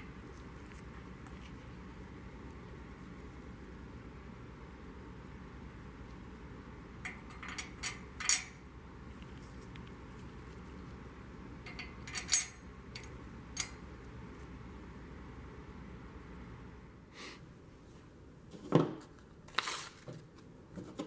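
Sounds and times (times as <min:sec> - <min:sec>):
metal tools clinking: 0:11.7 - 0:13.8.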